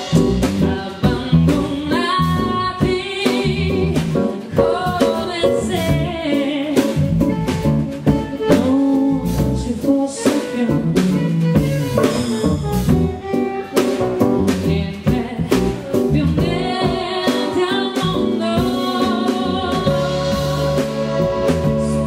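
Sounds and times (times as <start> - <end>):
electric bass guitar: 0.0 - 10.0, 10.6 - 22.0
woman singing: 0.0 - 12.2, 14.4 - 22.0
drum kit: 0.0 - 22.0
electric keyboard: 0.0 - 22.0.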